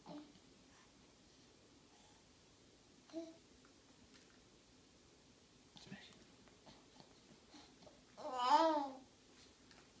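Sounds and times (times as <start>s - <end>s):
baby babbling: 8.2s - 9.1s.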